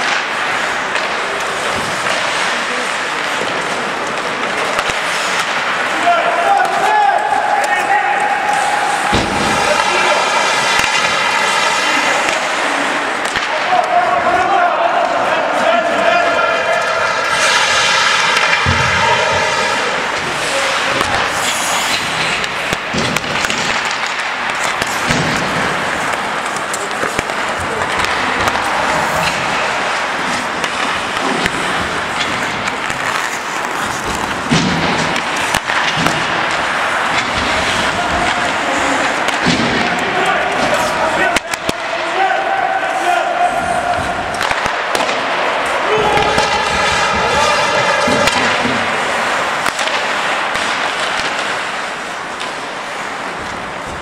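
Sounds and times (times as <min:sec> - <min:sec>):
skate blades scraping ice: 0:00.0 - 0:14.5, 0:15.1 - 0:54.0
sticks and puck clacking: 0:00.0 - 0:54.0
voices shouting: 0:05.9 - 0:21.5, 0:27.7 - 0:31.0, 0:36.1 - 0:50.5.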